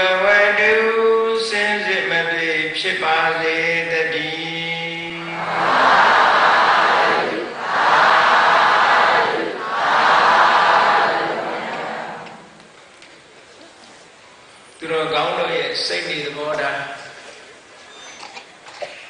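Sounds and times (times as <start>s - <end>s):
monk chanting into a microphone: 0.0s - 5.4s
congregation answering in unison: 5.0s - 12.6s.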